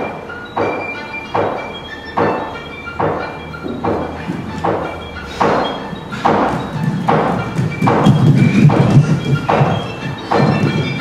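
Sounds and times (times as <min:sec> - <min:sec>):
faint sustained music tones: 0:00.0 - 0:11.0
bare feet thudding on stage: 0:03.0 - 0:11.0.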